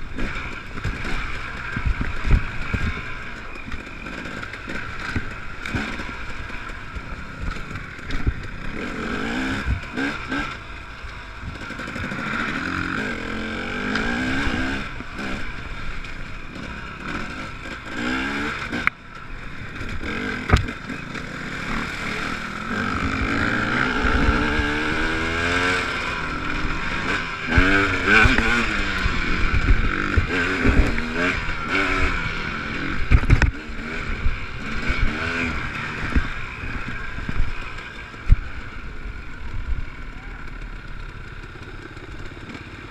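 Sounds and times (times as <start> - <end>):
dirt bike engine revving: 0.0 - 42.9.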